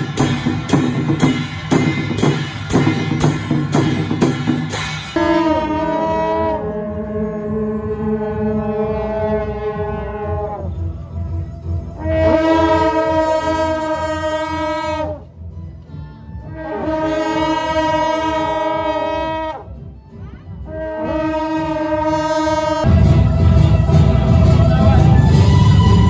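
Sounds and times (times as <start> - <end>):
long metal horns blasting: 0.0 - 15.5, 16.4 - 19.8, 20.6 - 26.0.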